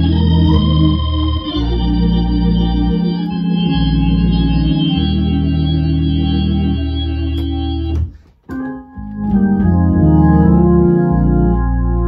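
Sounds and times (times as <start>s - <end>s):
low bass line: 0.0s - 8.1s, 8.7s - 12.0s
organ playing hymn chords: 0.0s - 12.0s.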